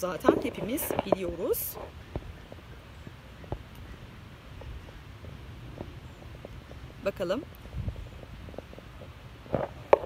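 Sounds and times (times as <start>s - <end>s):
wind rumble: 0.0s - 10.0s.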